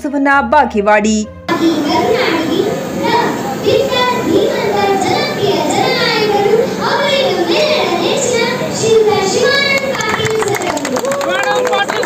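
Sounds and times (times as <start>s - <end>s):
girl speaking into microphone: 0.0s - 11.1s.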